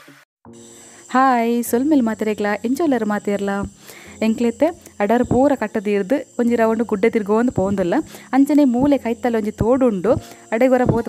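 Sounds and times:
high-pitched insect drone: 0:00.5 - 0:11.0
woman talking: 0:01.1 - 0:11.0.

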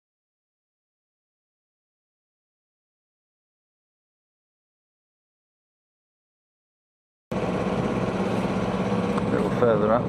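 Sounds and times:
boat engine droning: 0:07.3 - 0:10.0.

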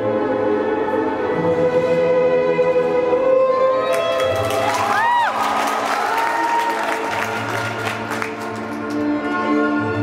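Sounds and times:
audience applause: 0:03.9 - 0:09.2
spectator whooping: 0:04.5 - 0:07.2
classical string music: 0:06.9 - 0:10.0.

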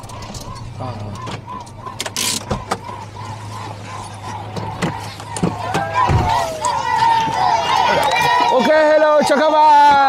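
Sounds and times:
pickup truck engine running: 0:00.0 - 0:10.0
children's voices: 0:02.8 - 0:08.8.

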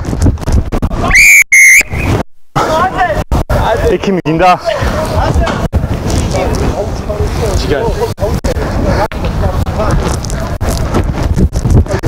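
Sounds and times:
referee's whistle blasts: 0:01.1 - 0:02.2.

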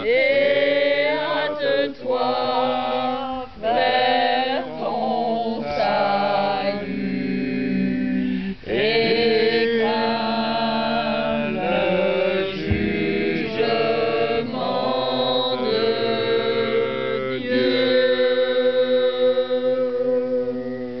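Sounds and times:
voices singing a cappella chorale: 0:00.0 - 0:21.0.

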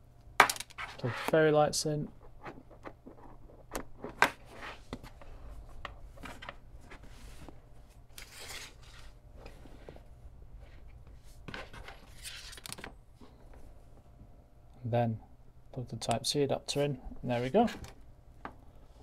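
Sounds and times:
cables and circuit boards handled: 0:00.4 - 0:13.7, 0:17.2 - 0:18.6.

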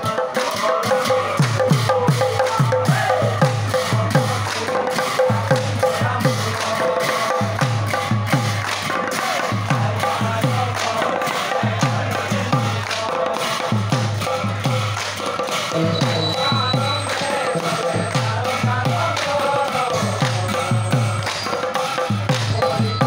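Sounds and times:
hand drums beaten fast: 0:00.0 - 0:23.0
brass hand cymbals clashing: 0:13.4 - 0:23.0.

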